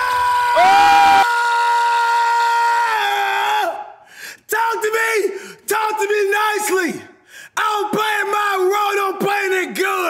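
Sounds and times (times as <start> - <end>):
man yelling excitedly: 0.0 - 3.9, 4.5 - 10.0.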